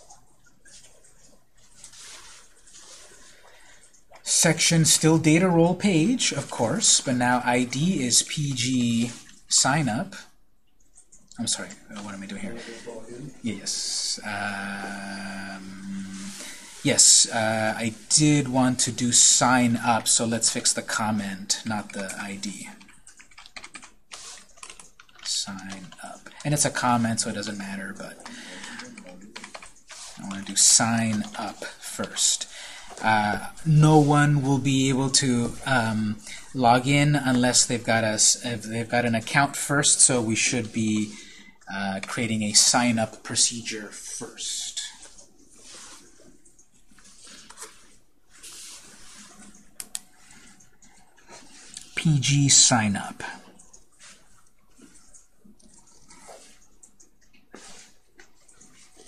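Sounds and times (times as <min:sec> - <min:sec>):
faint room noise: 0:00.0 - 0:59.0
computer keyboard typing: 0:17.9 - 0:38.1, 0:45.0 - 0:59.0.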